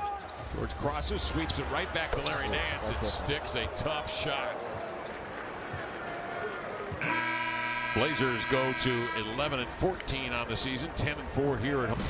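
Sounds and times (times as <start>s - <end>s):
low steady horn blare: 7.0s - 9.8s.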